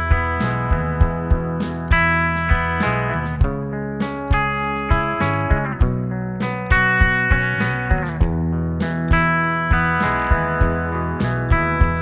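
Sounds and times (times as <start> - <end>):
electric guitar through amplifier: 0.0 - 12.0.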